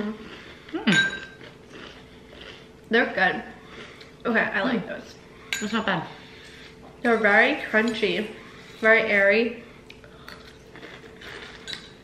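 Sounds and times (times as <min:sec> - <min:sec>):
chewing crunchy cereal: 0:00.2 - 0:02.9, 0:09.8 - 0:12.0.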